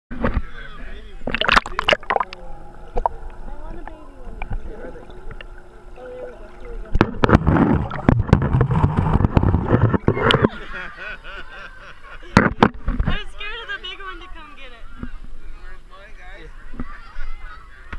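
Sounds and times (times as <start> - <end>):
underwater sloshing and rumbling: 1.1 - 10.7
muffled underwater gurgling: 1.2 - 10.6.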